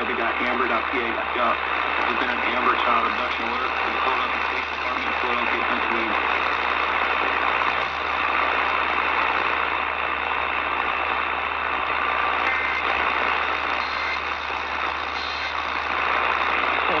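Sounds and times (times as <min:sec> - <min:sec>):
low hum: 0:00.0 - 0:17.0
radio static hiss: 0:00.0 - 0:17.0.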